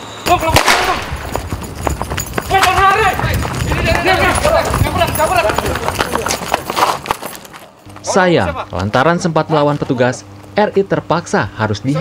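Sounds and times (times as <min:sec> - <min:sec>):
hurried footsteps: 0:00.3 - 0:10.6
men shouting: 0:02.4 - 0:06.3.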